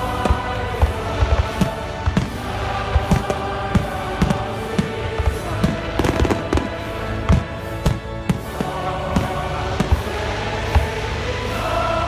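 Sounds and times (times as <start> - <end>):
fireworks bangs: 0.0 - 10.2
background music: 0.0 - 12.0.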